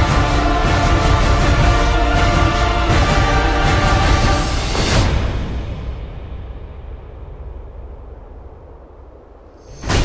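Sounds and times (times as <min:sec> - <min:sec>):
low deep rumble: 0:00.8 - 0:09.8.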